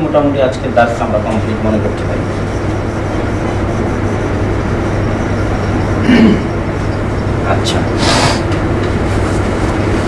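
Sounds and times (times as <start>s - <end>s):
low room hum and rumble: 0.0s - 10.0s.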